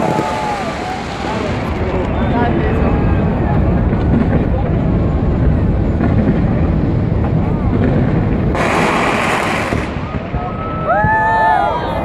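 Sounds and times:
fireworks crackle and rumble: 0.0 - 12.0
loud hiss: 8.6 - 10.1.

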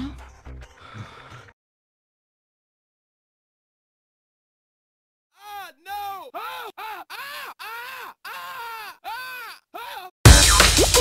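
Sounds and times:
man's chopped wailing cry: 5.4 - 10.1.

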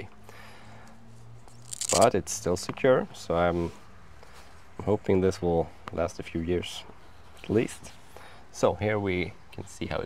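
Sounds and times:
watch band rustling: 1.4 - 2.2
person speaking: 1.7 - 2.3.

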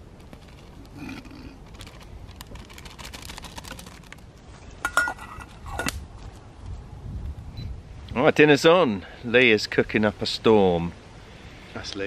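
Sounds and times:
campfire crackling: 0.0 - 6.6
metal spoon scraping steel pots: 4.8 - 5.9.

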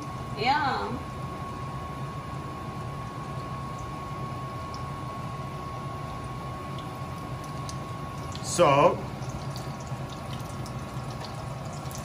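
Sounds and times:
fish sizzling in hot oil: 6.8 - 12.0.

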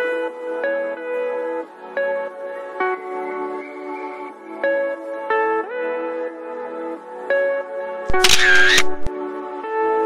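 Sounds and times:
instrumental background music: 0.0 - 10.0
camera shutter clicks: 8.1 - 9.1.

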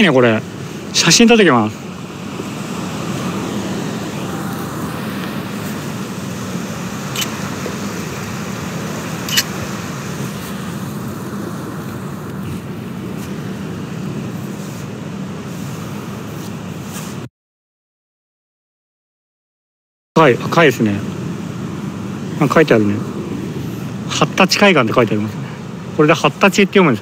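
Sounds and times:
ocean waves breaking: 0.0 - 17.3, 20.2 - 27.0
short clicks: 9.3 - 9.5.

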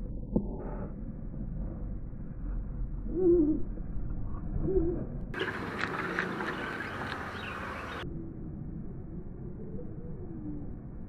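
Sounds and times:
bright outdoor noise: 0.0 - 11.0
low steady hum: 0.0 - 11.0
low hooting calls: 4.6 - 8.1.

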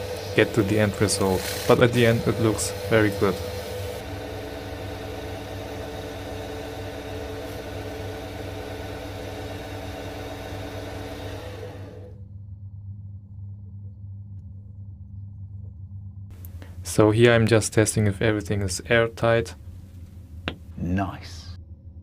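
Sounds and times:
lathe humming: 0.0 - 12.2.

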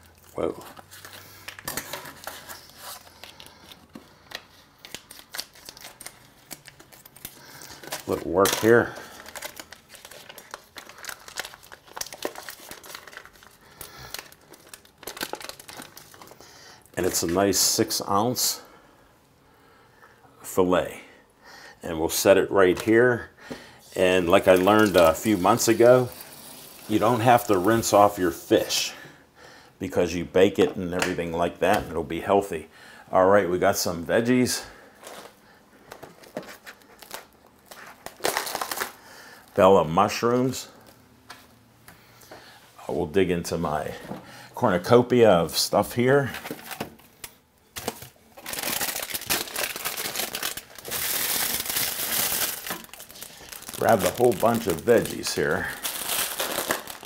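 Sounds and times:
plastic packaging crinkling: 0.0 - 17.8, 24.0 - 28.3, 34.9 - 39.6, 46.0 - 57.0
packaging tearing: 0.8 - 16.4, 24.3 - 27.8, 36.2 - 39.0, 47.8 - 57.0.

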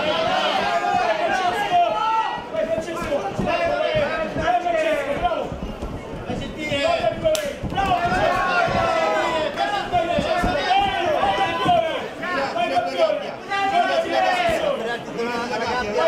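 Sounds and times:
voices shouting: 0.0 - 5.5, 7.7 - 14.8.

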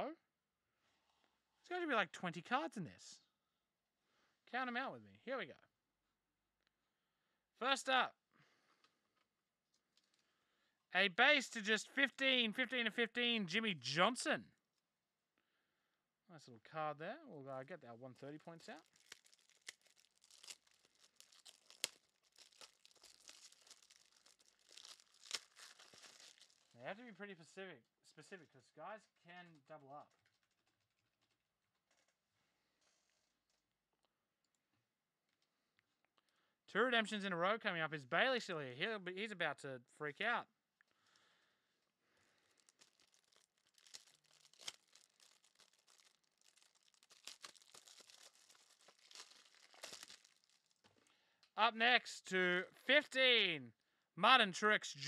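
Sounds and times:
trading cards rustling: 18.7 - 26.7, 42.6 - 50.9.

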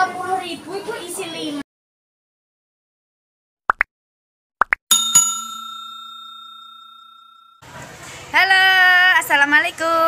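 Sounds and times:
notification bell ding: 4.9 - 7.6.

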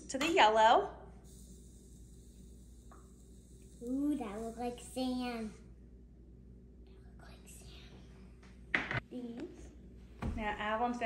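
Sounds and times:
sugar pouring through funnel: 1.2 - 5.5.

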